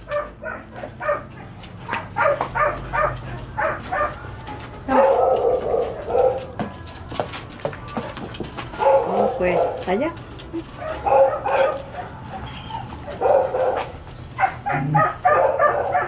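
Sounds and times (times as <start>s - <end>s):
dog barking: 0.1s - 4.2s, 4.9s - 6.5s, 8.8s - 9.9s, 10.8s - 12.1s, 12.7s - 16.0s.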